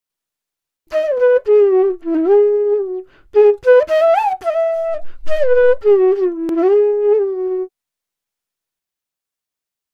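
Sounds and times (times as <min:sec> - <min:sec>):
flute melody: 0:00.9 - 0:07.7.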